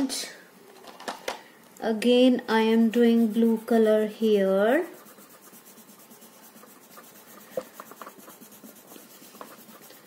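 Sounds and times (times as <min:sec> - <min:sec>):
crayon scratching on paper: 0:02.5 - 0:10.0.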